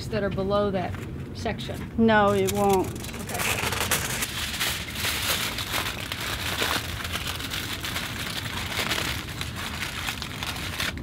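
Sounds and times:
aluminium foil crinkling: 2.2 - 11.0.

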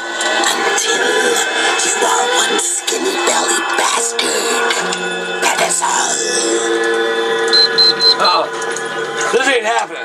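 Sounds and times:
music of held tones: 6.6 - 9.1
short high electronic beeps: 7.5 - 8.4.

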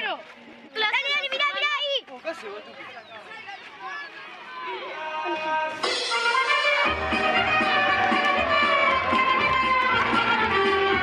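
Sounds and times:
music: 5.2 - 11.0.

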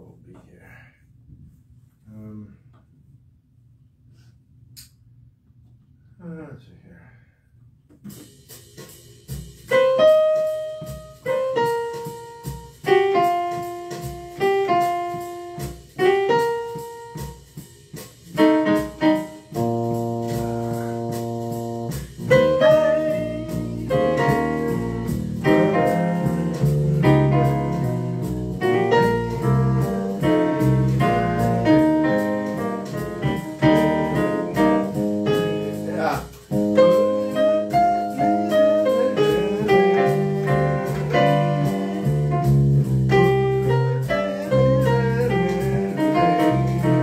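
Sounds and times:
solo piano: 9.7 - 17.4, 18.2 - 47.0.

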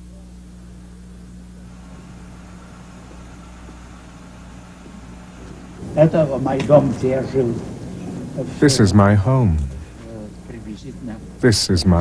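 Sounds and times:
faint street noise: 0.0 - 12.0
steady low hum: 0.0 - 12.0.

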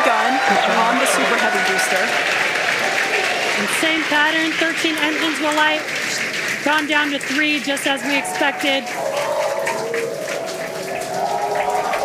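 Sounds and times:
voices whooping: 0.0 - 3.7, 7.8 - 12.0
crowd cheering and applauding: 0.0 - 12.0.

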